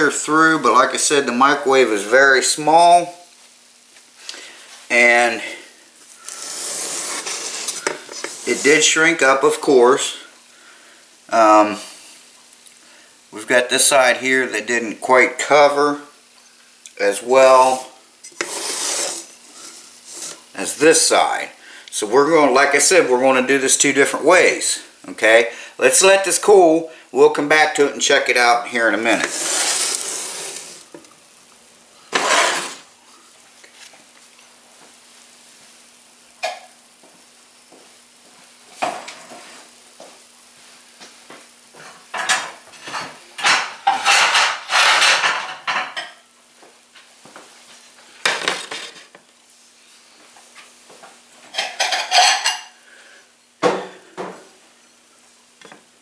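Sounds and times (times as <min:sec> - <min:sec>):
dishes clinking and clattering: 0:41.8 - 0:46.3, 0:51.5 - 0:52.8.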